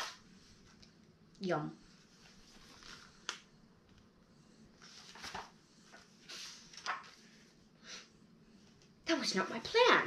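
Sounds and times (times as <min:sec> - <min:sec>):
book page rustling: 0:00.0 - 0:01.0, 0:02.0 - 0:03.6, 0:04.8 - 0:07.4.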